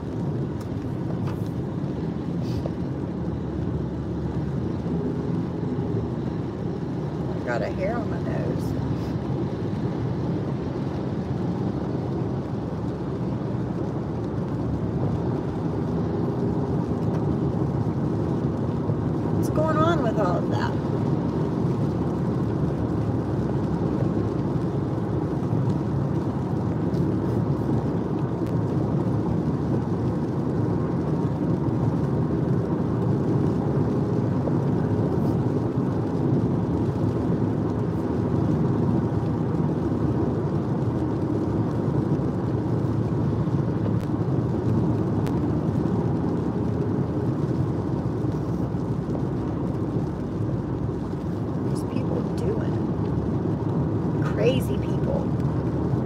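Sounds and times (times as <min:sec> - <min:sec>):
car cabin road noise: 0:00.0 - 0:56.0.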